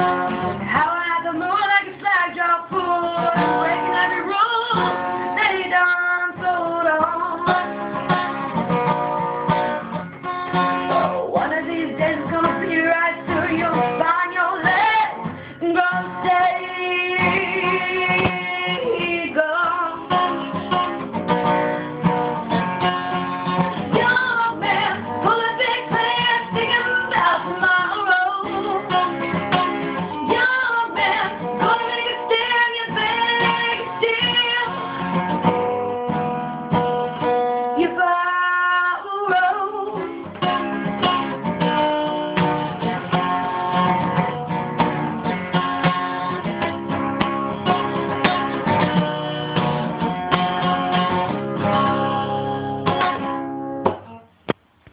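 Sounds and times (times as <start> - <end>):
acoustic guitar strumming: 0.0 - 54.9.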